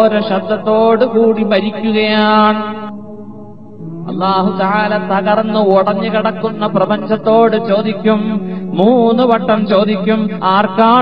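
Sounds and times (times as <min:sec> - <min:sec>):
steady low drone: 0:00.0 - 0:11.0
man chanting long note: 0:03.8 - 0:11.0.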